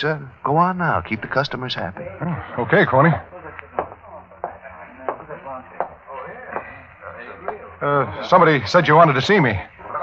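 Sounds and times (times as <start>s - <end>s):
faint murmur of voices: 1.0s - 10.0s
footsteps across a room: 3.7s - 6.8s.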